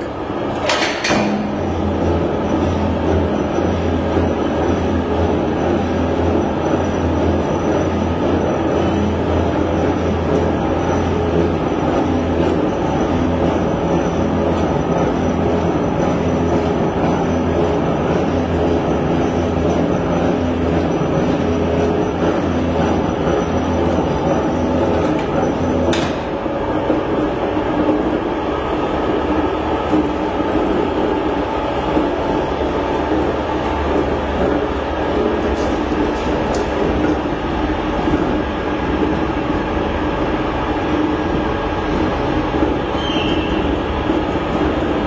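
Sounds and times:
mechanical power press running: 0:00.0 - 0:45.0.

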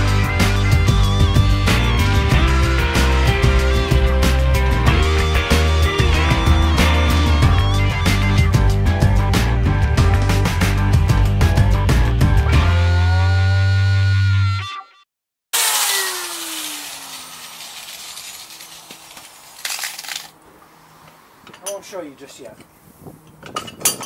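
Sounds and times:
background music: 0:00.0 - 0:15.0
angle grinder winding down: 0:15.6 - 0:20.3.

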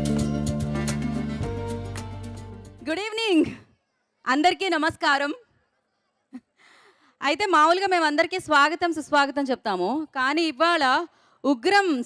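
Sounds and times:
background music: 0:00.0 - 0:03.3.

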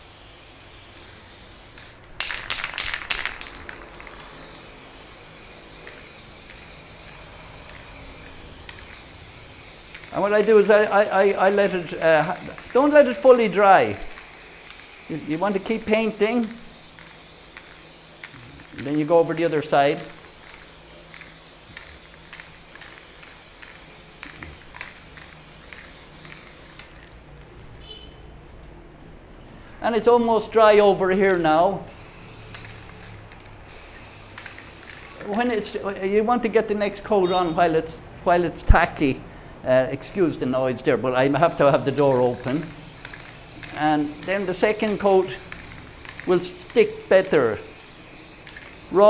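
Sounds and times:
spray paint can hissing: 0:00.0 - 0:27.2, 0:31.9 - 0:35.8, 0:41.4 - 0:49.0
sharp clicks and rattles: 0:01.8 - 0:04.5.

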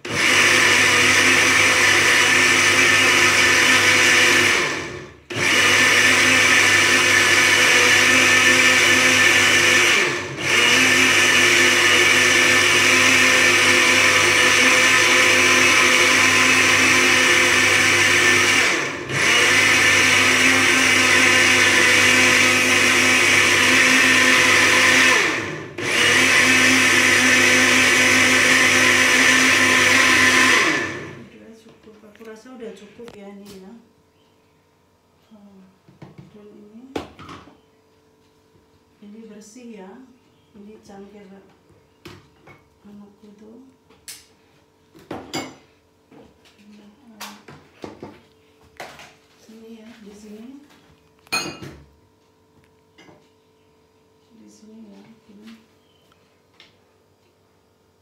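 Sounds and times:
blender running: 0:00.0 - 0:31.3.

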